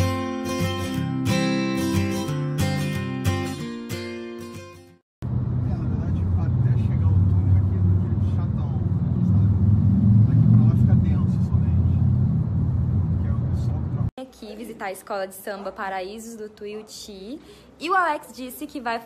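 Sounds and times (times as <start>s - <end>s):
strummed guitar music: 0.0s - 5.0s
car road and engine rumble: 5.2s - 14.2s.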